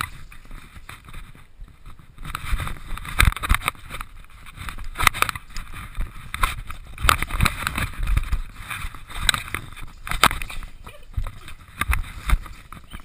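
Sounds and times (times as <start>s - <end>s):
knocks clicks and scraping: 0.0s - 13.0s
rustling: 0.0s - 13.0s.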